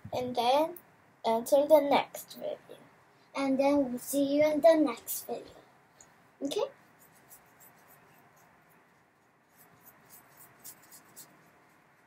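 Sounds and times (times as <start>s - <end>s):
soft scratchy paintbrush strokes: 6.6s - 12.0s.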